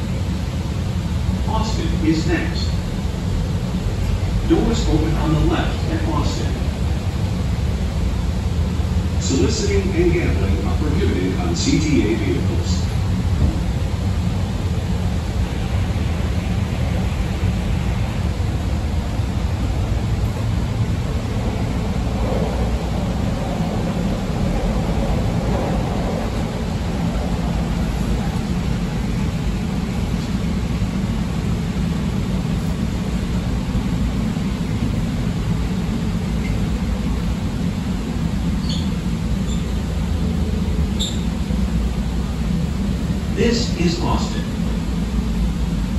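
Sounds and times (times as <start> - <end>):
train running on rails: 0.0 - 45.9.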